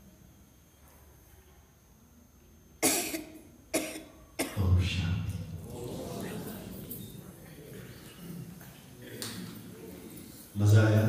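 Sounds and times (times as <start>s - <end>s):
person coughing: 2.8s - 4.7s.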